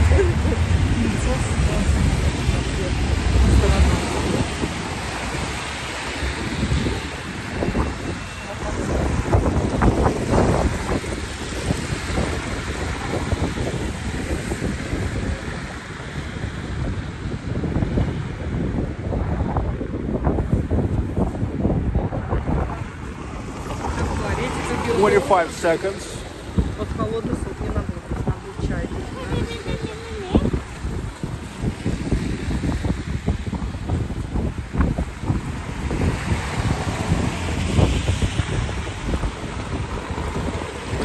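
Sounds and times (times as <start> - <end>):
city street noise: 0.0 - 41.0
wind buffeting microphone: 0.0 - 41.0.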